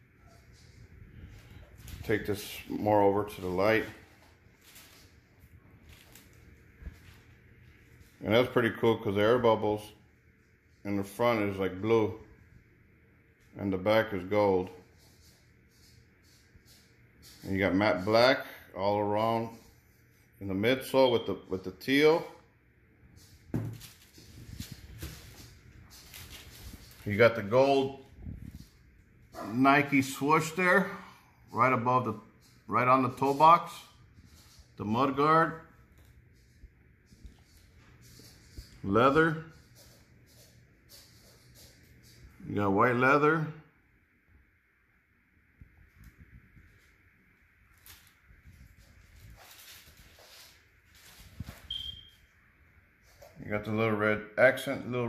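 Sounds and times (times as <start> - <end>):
handling noise rustling: 0.0 - 8.6, 23.1 - 30.2, 46.0 - 52.2
brief high squeak: 51.7 - 52.2.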